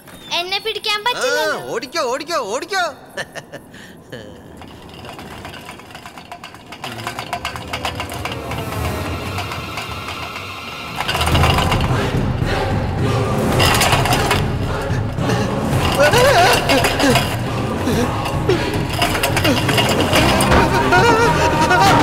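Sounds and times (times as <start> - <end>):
tense horror film score: 6.8 - 22.0.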